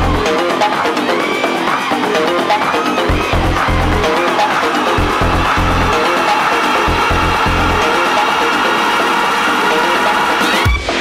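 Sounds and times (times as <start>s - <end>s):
synth lines: 3.0s - 10.6s
heavy bass pulses: 3.1s - 4.1s, 4.9s - 8.0s.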